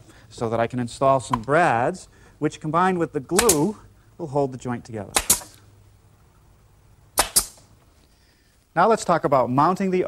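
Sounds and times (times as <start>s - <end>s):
nail gun pops: 3.4s - 3.7s, 5.1s - 5.6s, 7.2s - 7.7s.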